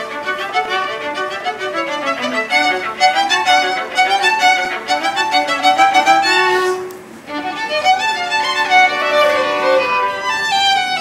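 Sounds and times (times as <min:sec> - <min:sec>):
violin duet: 0:00.0 - 0:11.0.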